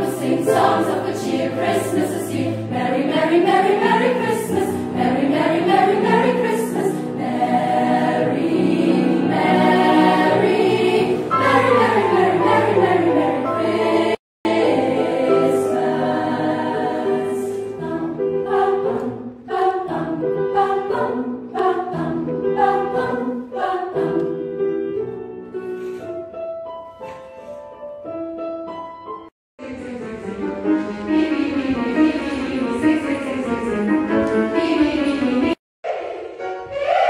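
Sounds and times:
choir singing: 0.0 - 24.6, 29.6 - 37.0.

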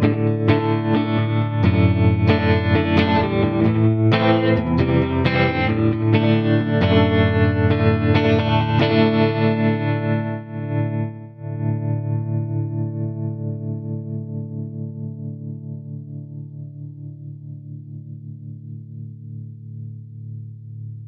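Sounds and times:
electric guitar chord with modulation: 0.0 - 21.0.

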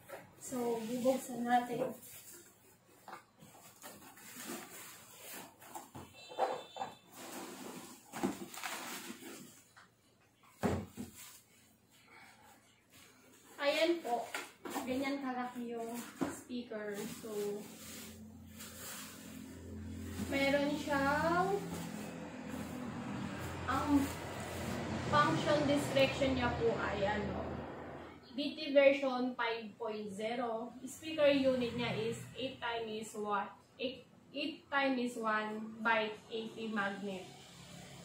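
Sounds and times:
cardboard and bubble wrap rustling: 0.0 - 9.8, 10.5 - 11.7, 13.0 - 24.9
woman speaking: 0.4 - 2.0, 13.6 - 17.8, 20.2 - 21.8, 23.6 - 24.3, 24.9 - 27.7, 28.3 - 37.3.

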